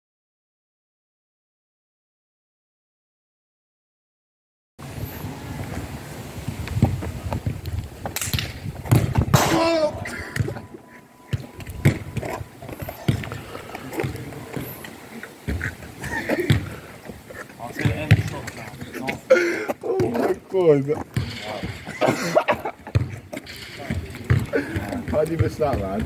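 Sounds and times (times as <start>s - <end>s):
football kicked and bouncing on tarmac: 6.4s - 10.6s, 11.3s - 14.8s, 15.4s - 21.8s, 22.8s - 26.0s
voices calling out: 8.6s - 26.0s.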